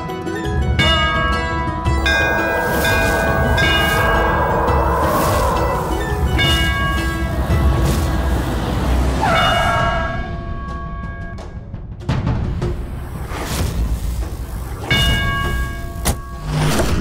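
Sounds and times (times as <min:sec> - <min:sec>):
held orchestral chords: 0:00.8 - 0:10.7
deep low drone: 0:01.6 - 0:10.6.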